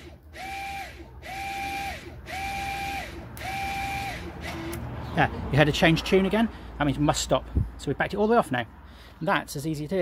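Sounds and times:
electric motor whining: 0:00.0 - 0:04.8.

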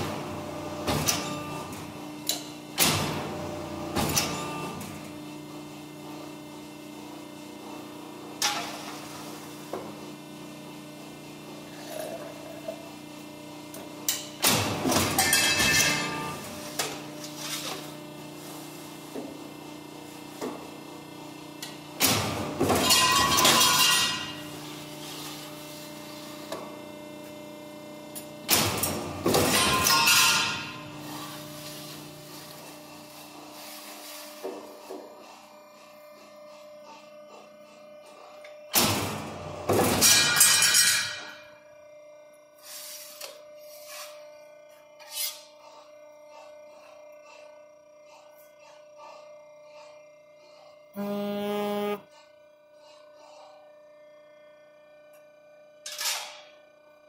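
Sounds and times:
hydraulic hum: 0:51.0 - 0:52.1.

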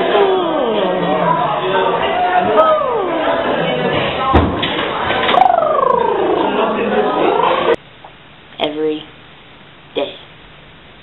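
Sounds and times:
thump: 0:04.3 - 0:04.8
voices sliding down in pitch: 0:05.2 - 0:07.8.

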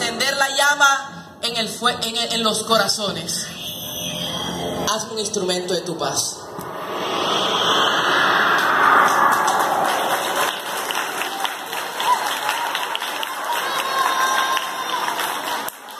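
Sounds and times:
children applauding: 0:09.1 - 0:15.9.

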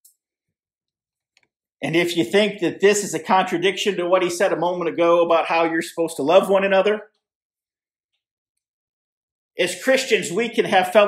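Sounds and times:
man speaking: 0:01.8 - 0:07.1, 0:09.6 - 0:11.0.

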